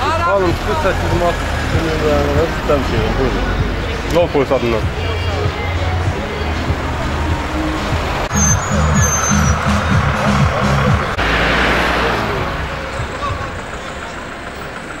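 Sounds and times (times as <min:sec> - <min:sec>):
background music: 0:00.0 - 0:13.1
vehicle passing by: 0:00.0 - 0:14.3
road traffic: 0:00.0 - 0:15.0.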